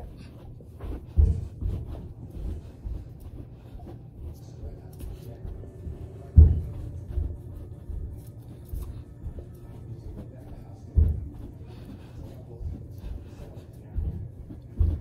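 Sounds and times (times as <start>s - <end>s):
feet and knees thumping floor: 0.0s - 15.0s.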